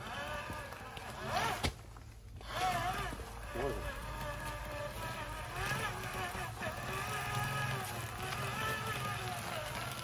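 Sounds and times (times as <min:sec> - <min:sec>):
electric motor whining: 0:00.0 - 0:10.0.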